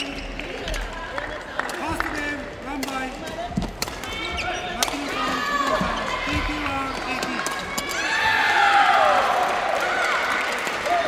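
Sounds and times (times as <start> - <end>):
voices in hall: 0.0 - 11.0
racket hitting shuttlecock: 2.8 - 6.4.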